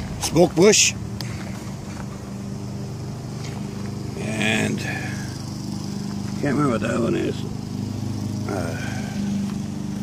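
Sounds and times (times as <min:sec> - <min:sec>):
motor engine humming: 0:00.0 - 0:10.0.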